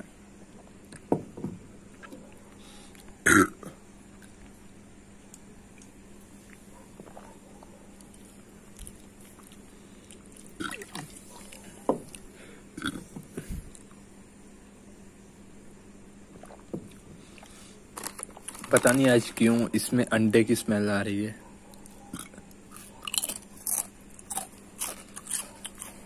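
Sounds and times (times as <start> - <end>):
faint steady hum: 0.0 - 26.0
man burping: 3.2 - 3.8, 12.8 - 13.1.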